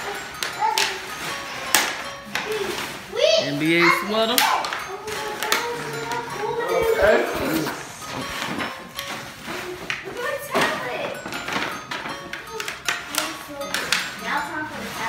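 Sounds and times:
background music: 0.0s - 15.0s
people talking indistinctly: 2.3s - 8.3s.

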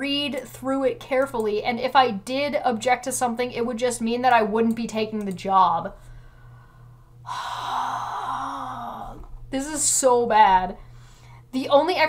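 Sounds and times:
woman sighing heavily: 7.2s - 9.3s.

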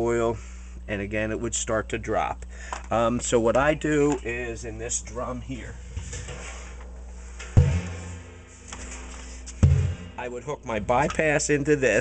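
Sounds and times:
steady low hum: 0.0s - 12.0s
steel drum knocked with ringing boom: 7.5s - 8.5s, 9.6s - 10.4s.

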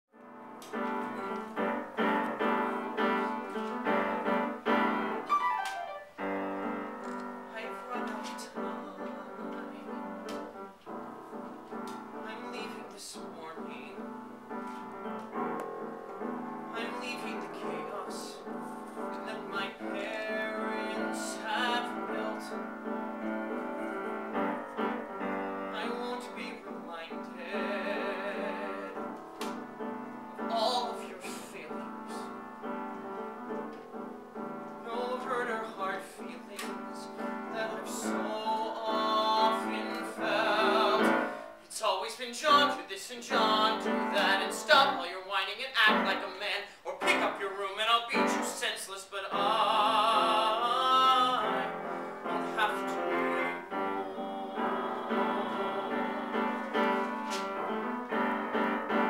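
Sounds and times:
piano chords: 0.1s - 59.0s
man singing: 7.0s - 10.6s, 12.1s - 14.1s, 16.7s - 24.4s, 25.7s - 29.6s, 30.4s - 32.4s, 34.8s - 57.4s.

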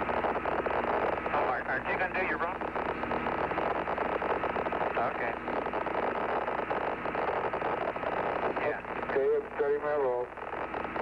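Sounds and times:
radio static hiss: 0.0s - 11.0s.

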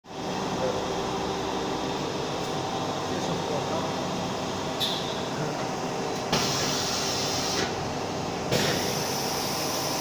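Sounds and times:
milling machine whirring hum: 0.1s - 10.0s.

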